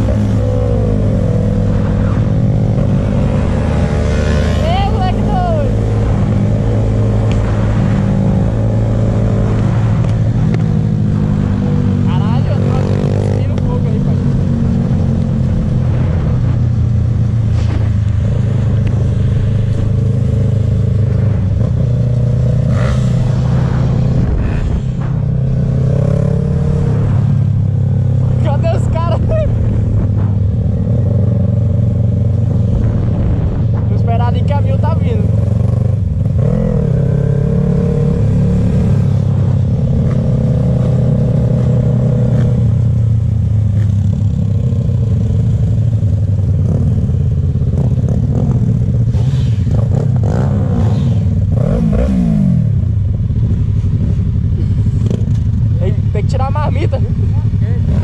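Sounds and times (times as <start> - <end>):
wind rushing over microphone: 0.0 - 56.0.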